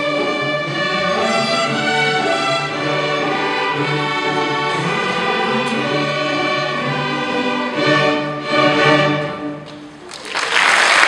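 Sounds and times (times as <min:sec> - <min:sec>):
string orchestra playing chords: 0:00.0 - 0:10.0.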